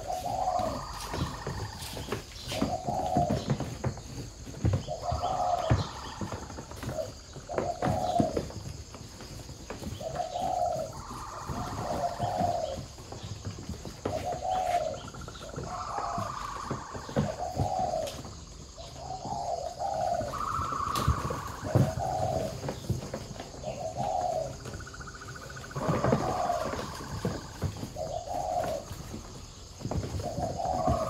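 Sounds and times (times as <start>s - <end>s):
doves cooing: 0.0s - 31.0s.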